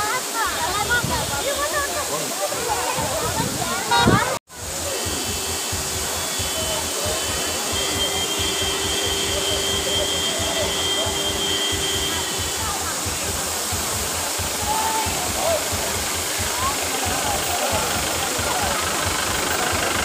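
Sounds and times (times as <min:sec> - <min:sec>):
bathers' voices: 0:00.0 - 0:20.0
waterfall rushing: 0:00.0 - 0:20.0.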